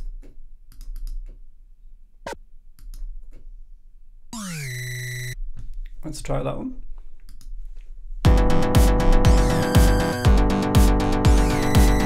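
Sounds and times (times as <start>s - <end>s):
soft mouse clicks: 0.0s - 1.4s, 2.8s - 3.5s, 7.2s - 7.9s
synthesizer effect note: 4.4s - 5.4s, 8.3s - 12.0s.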